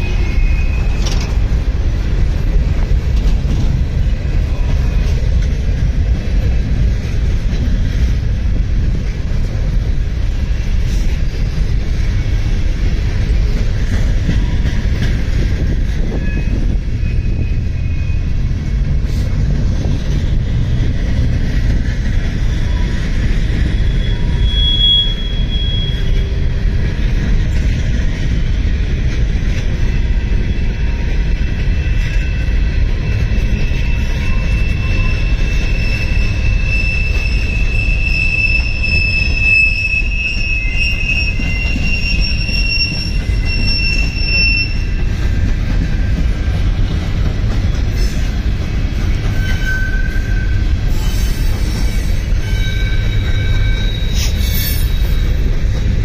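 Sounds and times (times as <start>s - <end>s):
freight train cars rumbling: 0.0s - 56.0s
train wheel squeal: 0.0s - 56.0s.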